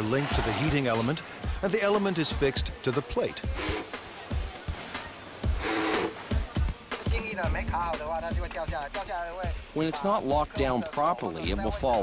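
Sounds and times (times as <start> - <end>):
electronic music with drum beat: 0.0 - 12.0.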